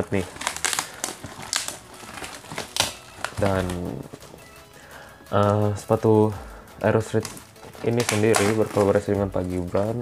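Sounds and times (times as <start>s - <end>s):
plastic film crinkling: 0.0s - 6.0s, 6.9s - 10.0s.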